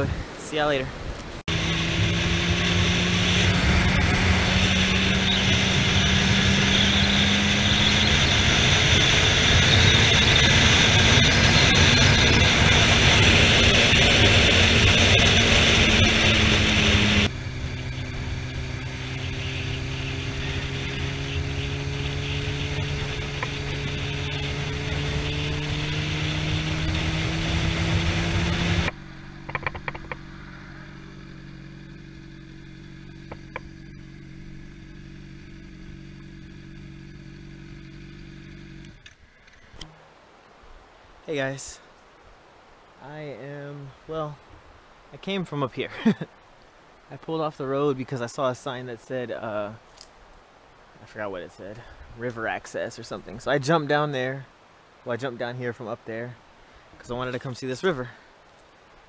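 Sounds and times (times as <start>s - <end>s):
heavy wind noise: 0.0s - 30.2s
motorcycle engine: 1.4s - 40.0s
clicks: 28.8s - 30.2s.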